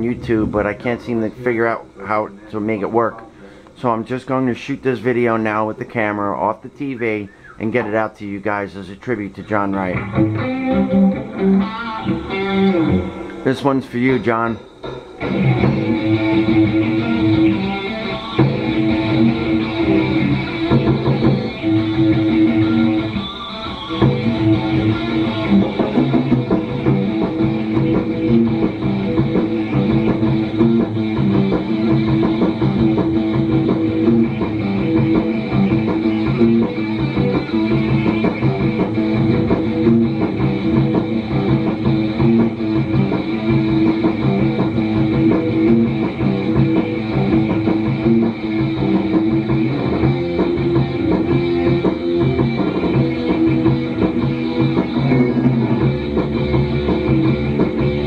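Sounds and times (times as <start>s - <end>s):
rock band playing: 9.9s - 13.6s, 14.8s - 58.0s.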